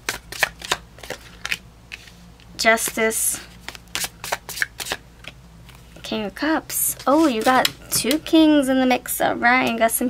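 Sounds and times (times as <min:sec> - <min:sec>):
cards being shuffled: 0:00.0 - 0:02.2, 0:02.8 - 0:05.8, 0:06.9 - 0:08.2.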